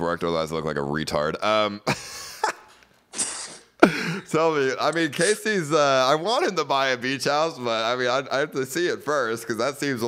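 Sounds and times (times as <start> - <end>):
man laughing breathily: 1.9 - 4.3.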